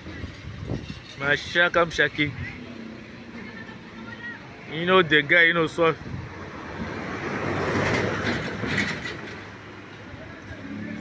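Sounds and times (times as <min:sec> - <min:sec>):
road vehicle rumbling and rattling: 0:00.0 - 0:11.0.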